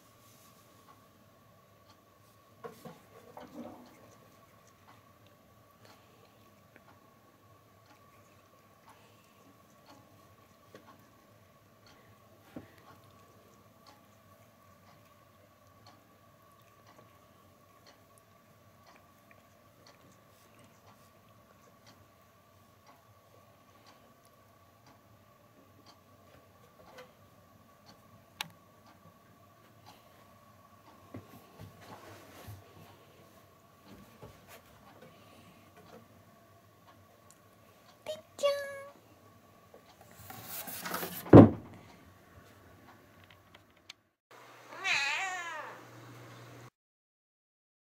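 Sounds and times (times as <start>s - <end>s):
faint steady whine: 0.0s - 40.7s
cat meowing: 44.7s - 45.8s.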